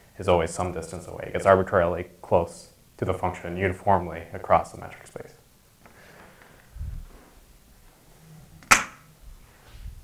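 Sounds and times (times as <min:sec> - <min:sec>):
sharp knock: 0:08.7 - 0:09.0.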